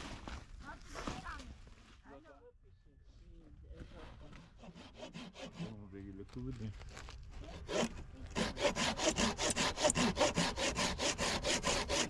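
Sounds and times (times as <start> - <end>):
hand saw cutting wood: 4.4 - 5.9, 7.4 - 12.0.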